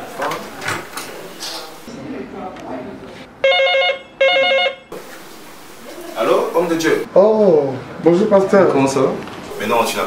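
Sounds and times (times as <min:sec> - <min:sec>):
electronic telephone ringing: 0:03.4 - 0:04.8.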